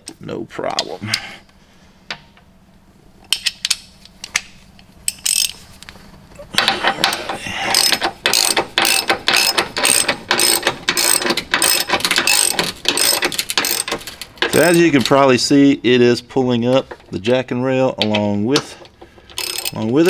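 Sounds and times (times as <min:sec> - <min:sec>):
ratchet clicking: 0:05.1 - 0:05.6, 0:06.6 - 0:15.0, 0:19.3 - 0:19.9.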